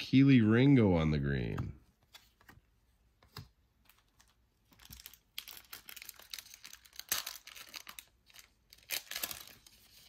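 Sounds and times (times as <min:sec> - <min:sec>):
plastic wrapper crinkling: 0:03.9 - 0:10.0.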